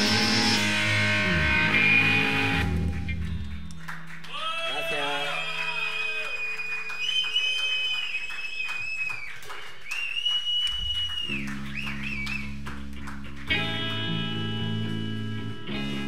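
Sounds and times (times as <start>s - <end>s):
high bending electric guitar notes: 0.0s - 3.7s, 13.0s - 16.0s.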